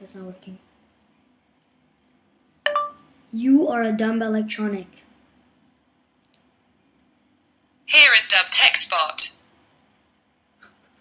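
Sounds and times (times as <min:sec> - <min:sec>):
smartphone electronic chime: 0:02.7 - 0:03.0.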